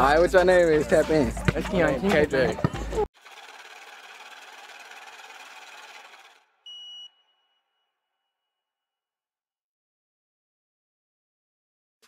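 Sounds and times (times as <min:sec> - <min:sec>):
short high beep: 0:06.7 - 0:07.8.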